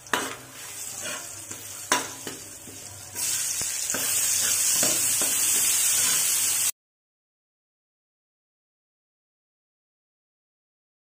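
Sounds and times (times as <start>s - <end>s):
metal ladle scraping wok: 0.0s - 6.7s
onion sizzling in oil: 0.0s - 6.8s.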